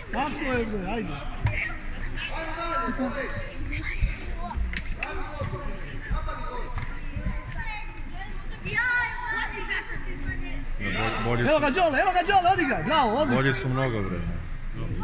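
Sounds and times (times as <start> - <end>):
voices talking and calling in a hall: 0.0 - 15.0.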